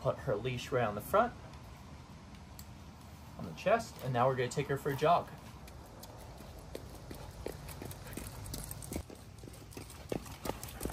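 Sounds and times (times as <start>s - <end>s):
jogging footsteps on concrete: 5.0s - 10.9s.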